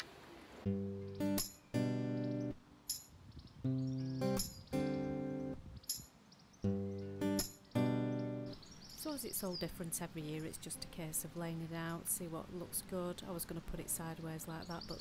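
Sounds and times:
acoustic guitar strumming chords: 0:00.7 - 0:02.6, 0:03.7 - 0:05.6, 0:06.7 - 0:08.6.

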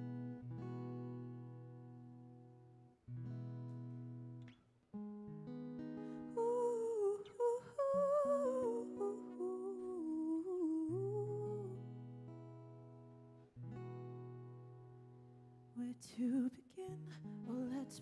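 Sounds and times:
acoustic guitar chords: 0:00.0 - 0:18.0
woman singing wordlessly: 0:06.3 - 0:11.9, 0:15.8 - 0:18.0.

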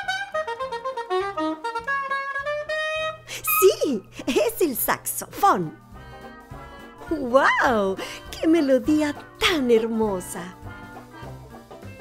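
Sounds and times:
saxophone melody: 0:00.0 - 0:04.1, 0:05.9 - 0:07.8, 0:10.6 - 0:12.0.

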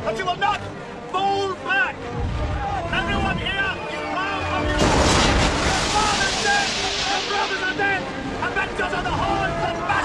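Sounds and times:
artillery shell blast: 0:04.8 - 0:07.8.

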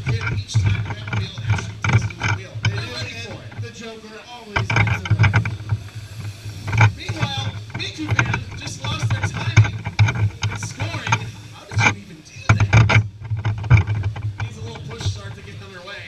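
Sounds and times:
electric karts humming and rattling: 0:00.0 - 0:16.0
indistinct voices: 0:00.0 - 0:16.0
low uneven rumble: 0:00.0 - 0:16.0
scattered clicks: 0:00.0 - 0:16.0.

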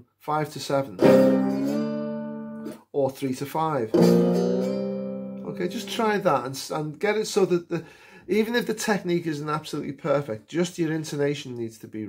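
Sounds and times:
slide guitar chord ringing: 0:01.0 - 0:02.8, 0:03.9 - 0:06.4.

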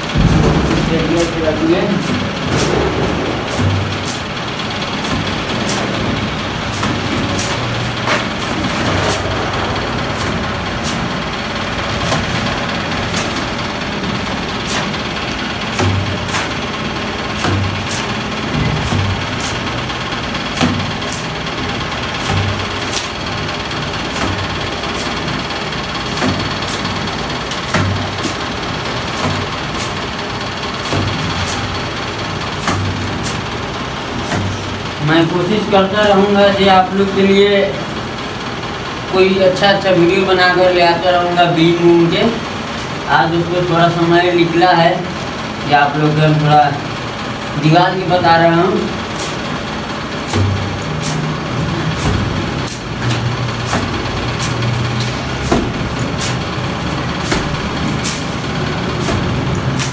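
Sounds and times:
machinery hum: 0:00.0 - 0:59.9.

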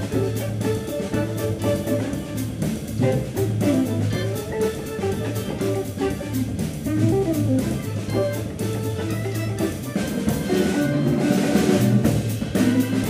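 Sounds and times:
drum kit with cymbal strokes: 0:00.0 - 0:13.0
electric guitar: 0:00.0 - 0:13.0
low bass line: 0:00.0 - 0:13.0.

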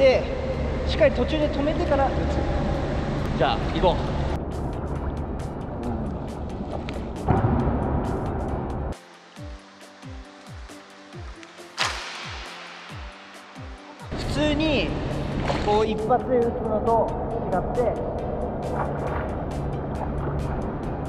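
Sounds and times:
pool water sloshing and splashing: 0:04.2 - 0:07.3, 0:09.0 - 0:16.0, 0:18.6 - 0:21.0
deep bass hits: 0:07.1 - 0:09.0.

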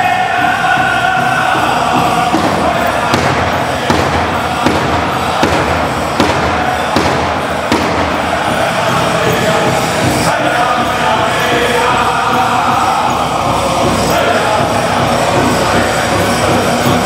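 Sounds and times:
big drum strokes: 0:00.0 - 0:17.0
group singing: 0:00.0 - 0:17.0.

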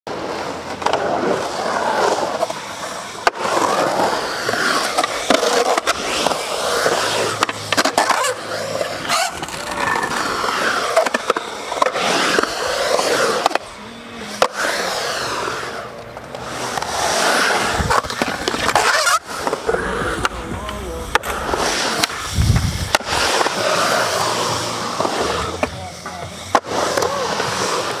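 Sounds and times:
skateboard wheels rolling on concrete: 0:00.1 - 0:28.0
skateboard clacking on concrete: 0:04.1 - 0:28.0.

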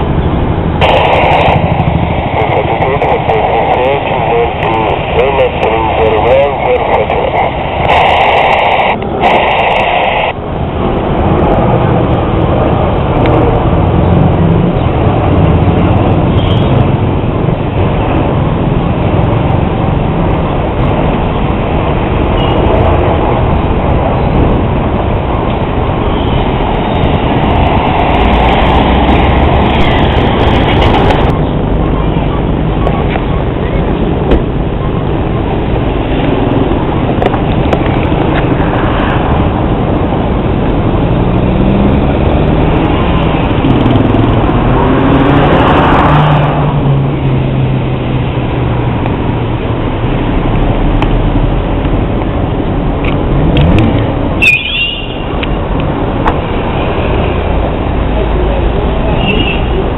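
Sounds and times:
airliner roaring overhead: 0:00.0 - 0:59.9
street noise: 0:00.0 - 0:59.9
voices: 0:00.8 - 0:10.4, 0:56.8 - 0:59.9.

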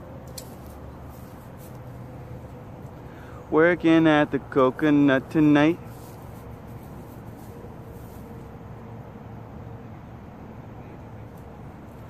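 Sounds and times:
faint steady hum: 0:00.0 - 0:12.0
low outdoor background noise: 0:00.0 - 0:12.0.

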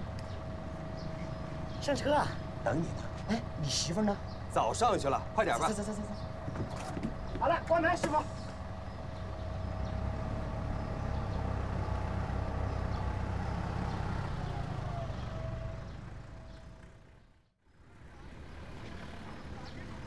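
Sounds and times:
bus engine rumbling and whining: 0:00.0 - 0:20.0
outdoor background noise: 0:00.0 - 0:20.0.

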